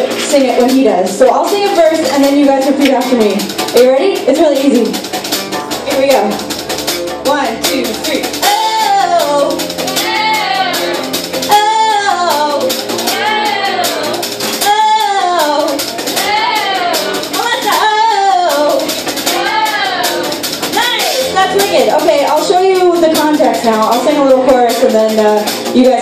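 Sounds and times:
keyboard and bass notes: 0.0s - 26.0s
person singing wordless phrase: 7.4s - 21.0s.

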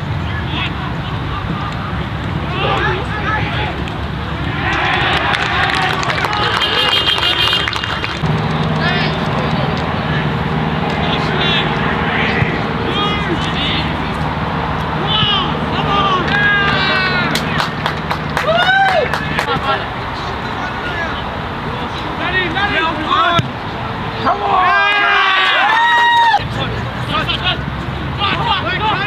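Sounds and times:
outdoor chatter: 0.0s - 29.0s
people shouting calls: 0.3s - 7.9s, 14.9s - 17.8s, 24.2s - 26.6s.

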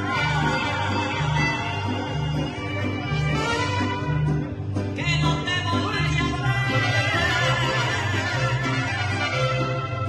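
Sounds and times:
trumpets: 0.0s - 4.6s, 6.9s - 10.0s
bass guitar line: 0.0s - 10.0s
strummed guitars: 0.0s - 10.0s
violins: 0.0s - 10.0s.

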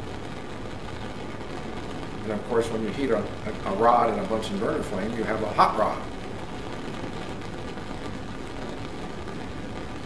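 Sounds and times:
gas flame rushing: 0.0s - 10.0s.

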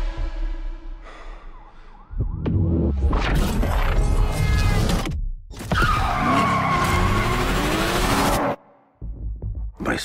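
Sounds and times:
low rumble: 0.0s - 4.2s.

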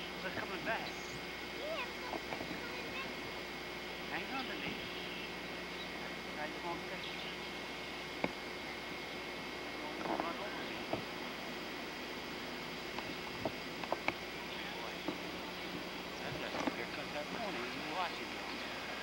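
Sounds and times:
tape hiss: 0.0s - 19.0s
faint distant voices: 14.3s - 19.0s.

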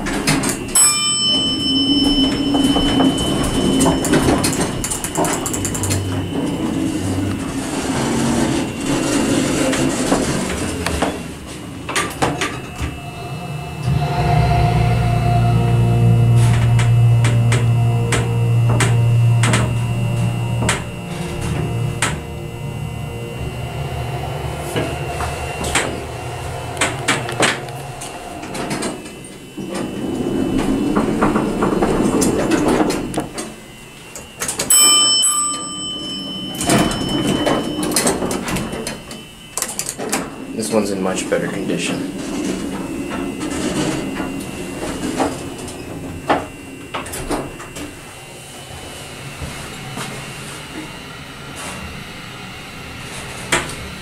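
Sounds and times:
elevator doors sliding: 0.0s - 54.0s
elevator hum: 0.0s - 54.0s
elevator bell ding: 0.6s - 10.0s, 10.8s - 31.0s, 34.4s - 39.6s.

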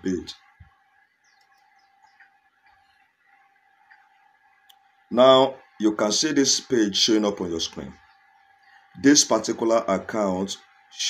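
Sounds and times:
faint steady hum: 0.0s - 11.0s
small ticks: 0.6s - 4.9s.

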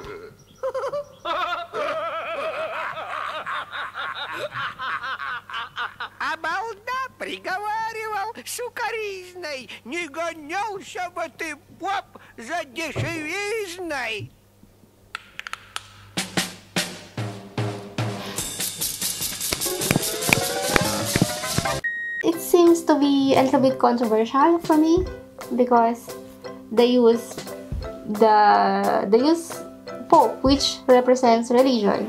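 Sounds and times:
cartoon characters laughing: 0.0s - 6.6s
tambourine beat: 18.4s - 21.8s
wooden spoons striking: 18.5s - 21.8s.

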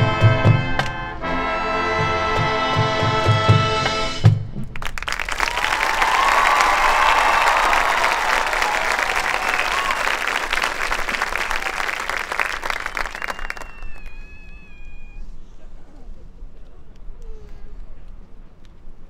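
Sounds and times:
audience applauding and cheering: 4.8s - 15.0s.

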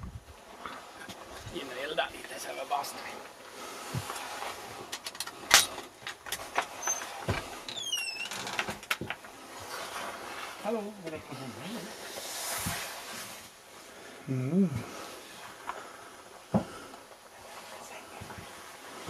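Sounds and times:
door hinge squeak: 6.8s - 8.6s
man calling out: 14.3s - 14.8s.

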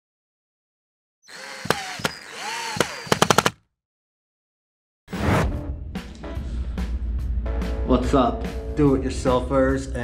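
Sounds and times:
rapid machine-gun-like hits: 2.7s - 3.6s.

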